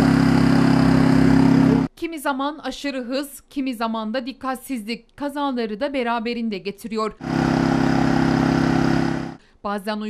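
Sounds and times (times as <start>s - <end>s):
engine running with fast pulse: 0.0s - 1.9s, 7.2s - 9.4s.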